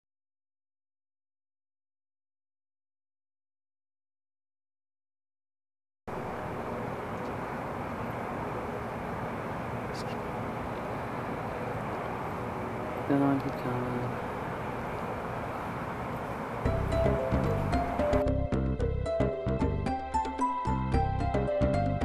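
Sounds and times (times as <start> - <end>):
outdoor background noise: 6.1 - 18.8.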